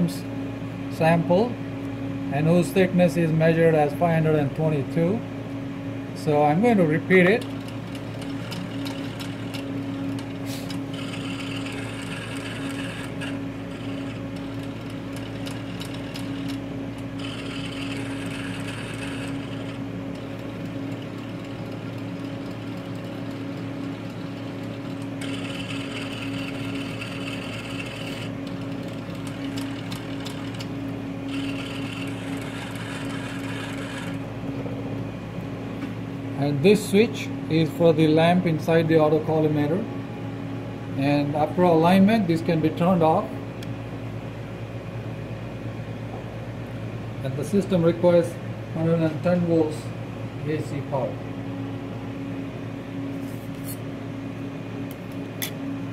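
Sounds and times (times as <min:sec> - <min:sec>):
steady low hum: 0:00.0 - 0:55.9
mechanical whirring: 0:07.4 - 0:34.2.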